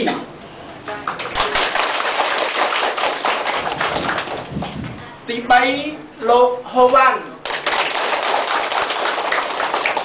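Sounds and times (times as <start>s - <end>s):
crowd applauding: 1.0s - 4.8s, 7.4s - 10.0s.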